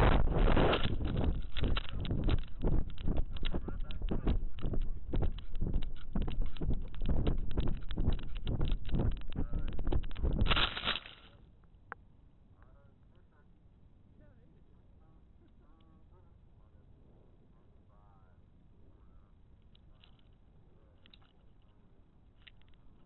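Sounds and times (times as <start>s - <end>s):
wind buffeting microphone: 0.0s - 10.9s.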